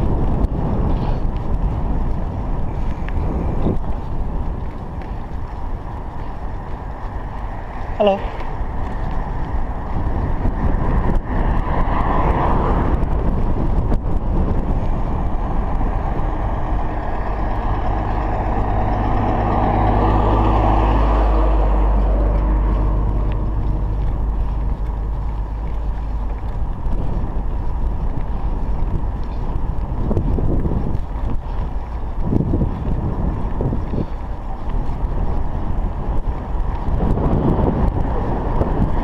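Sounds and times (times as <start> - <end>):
truck passing: 0.0 - 39.0
wind rumbling on microphone: 0.0 - 39.0.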